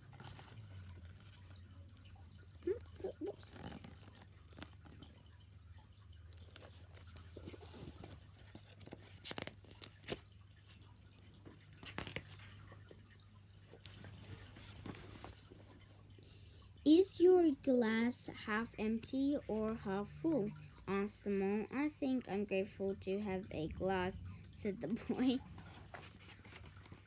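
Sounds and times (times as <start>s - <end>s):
book pages rustling: 0.0s - 1.6s, 3.3s - 5.2s, 6.4s - 10.7s, 11.4s - 15.9s, 24.9s - 27.0s
low steady hum: 0.0s - 27.0s.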